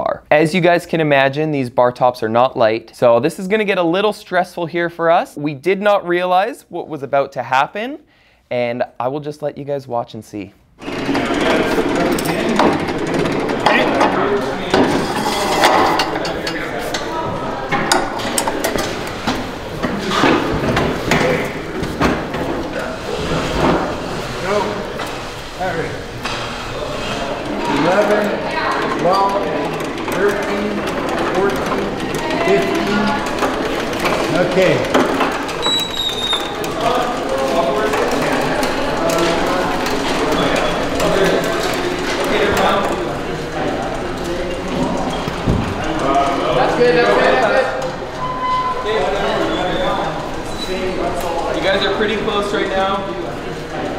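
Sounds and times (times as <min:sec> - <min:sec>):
people chattering in echoing hall: 0:10.7 - 0:53.9.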